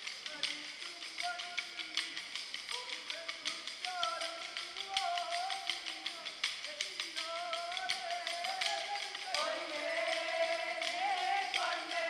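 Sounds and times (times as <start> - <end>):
wooden sticks clacking: 0.0 - 12.0
group singing: 7.7 - 12.0.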